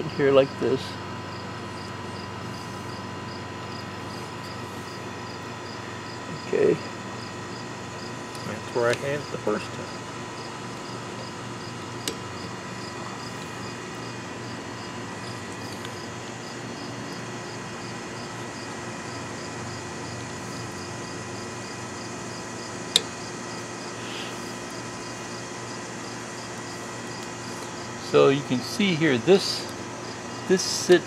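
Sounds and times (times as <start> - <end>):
insects chirping: 0.1 - 31.0.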